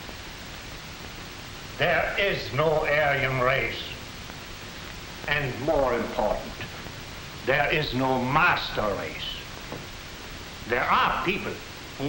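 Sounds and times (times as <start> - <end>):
film soundtrack hiss: 0.0 - 12.0
man speaking: 1.8 - 4.0, 5.3 - 6.8, 7.4 - 9.5, 10.7 - 11.6.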